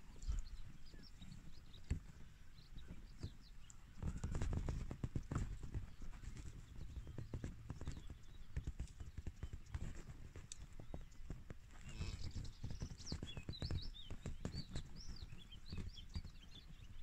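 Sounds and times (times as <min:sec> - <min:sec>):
soft thumps and knocks: 0:04.0 - 0:11.6.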